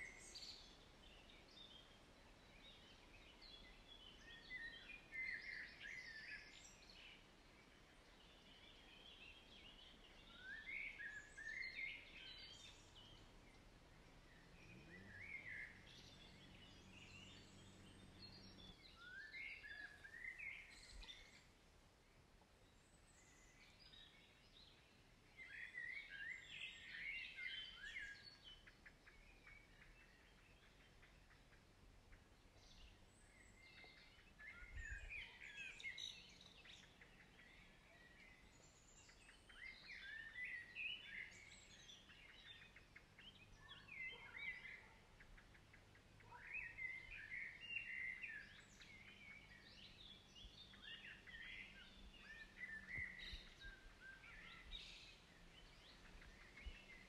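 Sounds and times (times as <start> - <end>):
songbirds chirping: 0.0 - 57.0.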